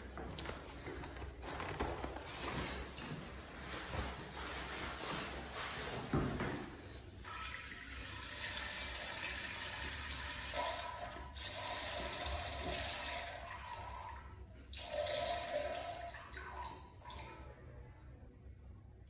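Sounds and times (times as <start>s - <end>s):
water running: 7.2s - 17.5s.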